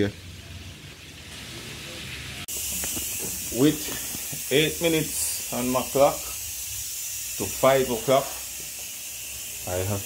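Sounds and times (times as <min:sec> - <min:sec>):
pressure cooker hissing steam: 0:01.8 - 0:10.0.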